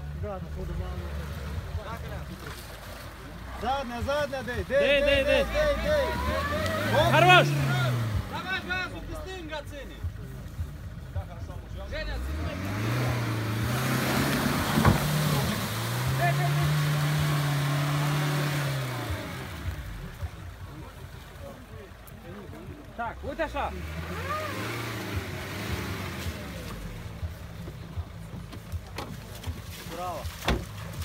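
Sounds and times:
water and mud splashing: 0.4 - 8.5, 12.3 - 31.0
car engine revving hard: 3.6 - 9.3, 11.8 - 20.4, 23.4 - 27.5.

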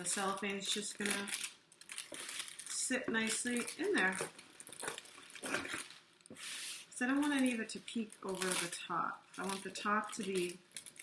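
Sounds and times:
plastic crinkling: 0.0 - 11.0
scissors snipping cellophane: 8.2 - 8.8, 9.4 - 11.0.

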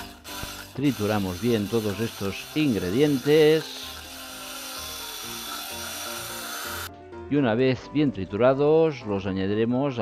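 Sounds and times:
stick blender running: 0.0 - 6.9.

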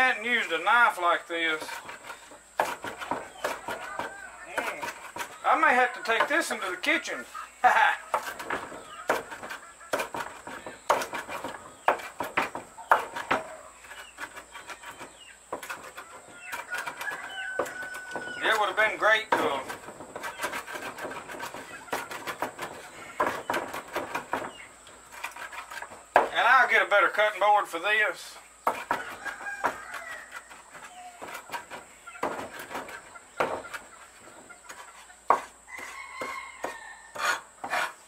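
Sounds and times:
knife chopping on wooden board: 1.7 - 5.4, 8.1 - 18.6, 19.2 - 26.4, 28.6 - 33.9, 34.7 - 38.0
rooster crowing: 3.5 - 4.9, 16.1 - 18.5, 28.9 - 31.4, 35.7 - 37.5.

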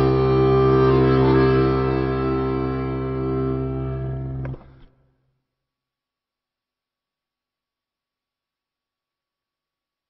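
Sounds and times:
held music chord: 0.0 - 4.6.

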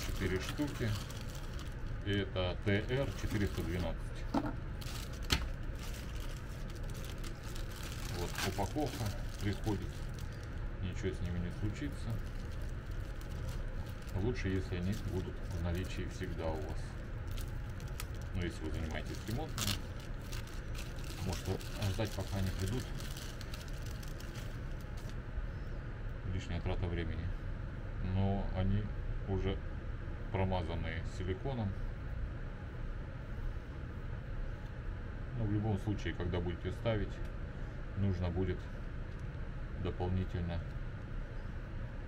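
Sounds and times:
plastic bag crinkling: 0.0 - 2.2, 2.8 - 25.2
light rustling of plastic: 0.0 - 25.2
steady low hum: 0.0 - 42.0.

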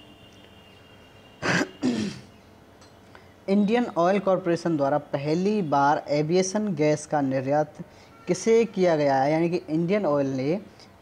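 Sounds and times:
man clearing throat: 1.4 - 2.3.

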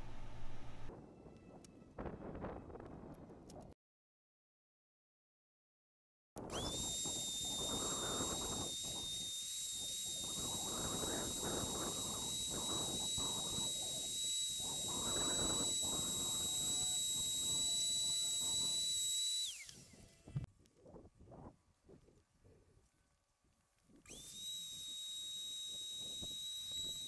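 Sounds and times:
spray turbine whine and hiss: 6.5 - 20.3, 24.1 - 27.0.

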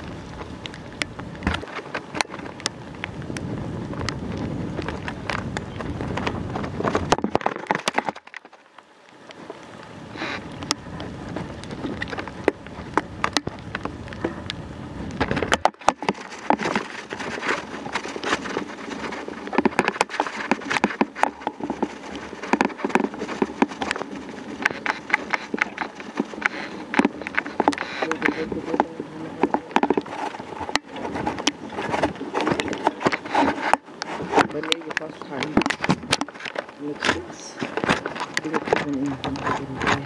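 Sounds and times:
bicycle riding on rough track: 0.0 - 40.0.

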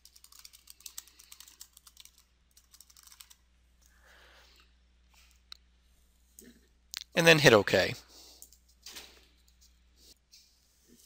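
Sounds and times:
rapid typing on keyboard: 0.0 - 3.4.

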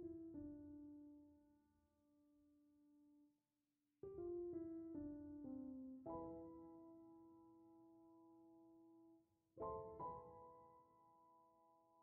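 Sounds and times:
soft piano music: 0.0 - 3.3, 4.0 - 12.0.

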